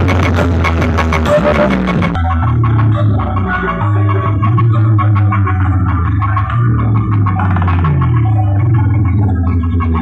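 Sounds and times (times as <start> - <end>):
loud bass-heavy music: 0.0 - 10.0.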